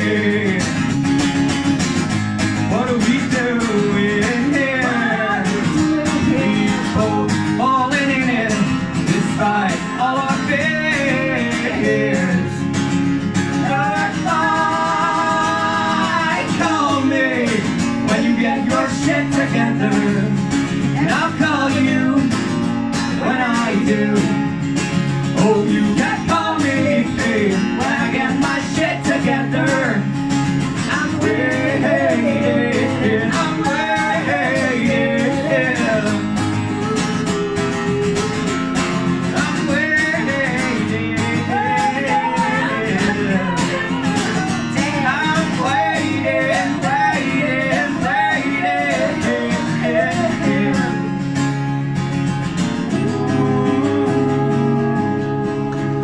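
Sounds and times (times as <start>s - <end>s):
acoustic guitar strumming: 0.0s - 56.0s
person singing: 2.7s - 12.7s, 13.6s - 22.6s, 30.9s - 51.1s, 52.9s - 56.0s.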